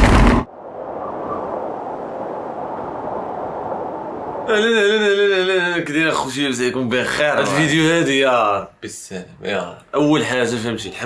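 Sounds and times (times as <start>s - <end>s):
wind noise on microphone: 0.0s - 4.6s.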